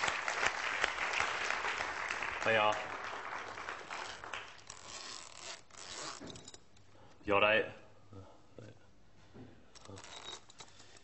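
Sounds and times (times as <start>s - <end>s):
jacket zip being pulled: 3.9s - 6.6s.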